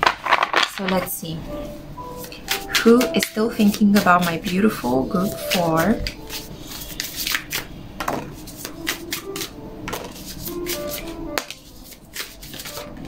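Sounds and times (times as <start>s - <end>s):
cards being shuffled: 0.0s - 1.0s, 6.2s - 7.7s, 8.5s - 12.9s
faint background music: 0.8s - 13.0s.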